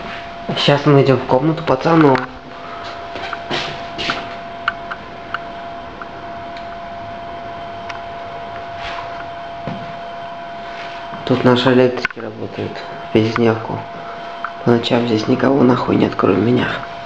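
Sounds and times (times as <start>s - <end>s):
machinery drone with whine: 0.0s - 17.0s.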